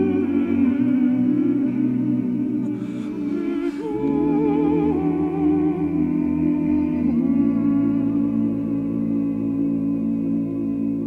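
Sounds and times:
a cappella choir singing harmony: 0:00.0 - 0:11.0.

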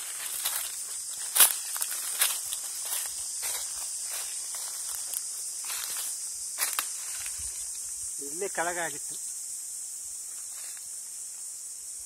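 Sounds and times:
footsteps in leaf litter: 0:00.0 - 0:07.7
high insect drone: 0:00.0 - 0:12.0.

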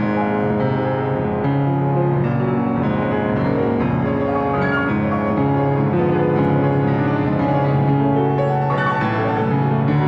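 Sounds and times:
grand piano chords: 0:00.0 - 0:10.0.

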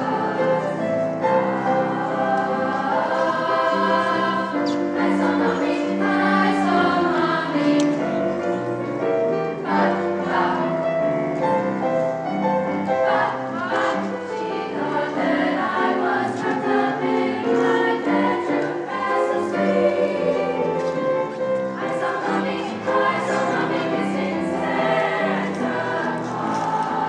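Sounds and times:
female choir singing in parts: 0:00.0 - 0:08.7, 0:09.4 - 0:27.0.

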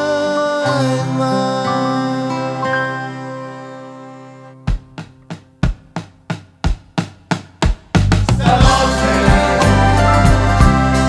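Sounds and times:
drum beating sharp hits: 0:04.7 - 0:11.0
full band playing: 0:07.9 - 0:11.0.

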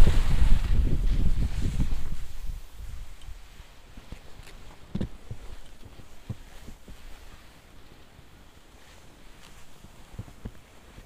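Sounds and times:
faint wind on microphone: 0:00.0 - 0:11.0
skis sliding over snow: 0:00.0 - 0:11.0.

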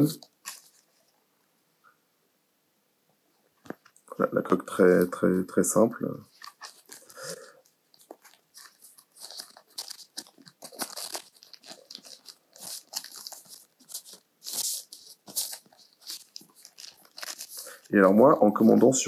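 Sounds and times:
plastic wrapping crinkling: 0:00.0 - 0:01.2, 0:06.2 - 0:19.0.

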